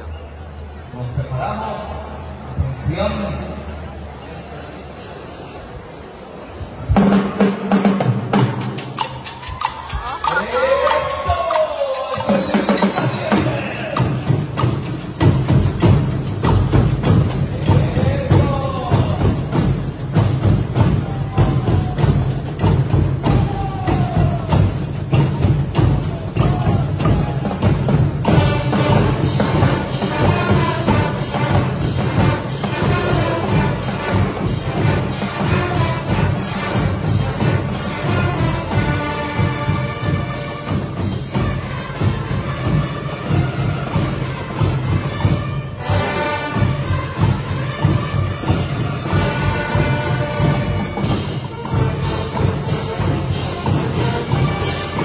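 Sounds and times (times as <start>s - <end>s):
bass and snare drums: 6.8s - 55.0s
brass instruments melody: 24.5s - 55.0s.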